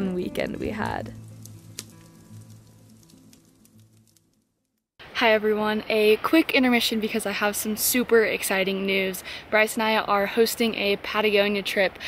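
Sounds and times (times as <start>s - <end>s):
background music: 0.0s - 4.4s
wood fire crackling: 0.0s - 4.9s.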